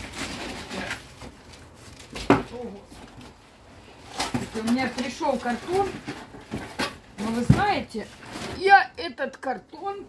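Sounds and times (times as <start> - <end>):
cardboard rustling and knocking: 0.0 - 3.4, 4.1 - 8.9.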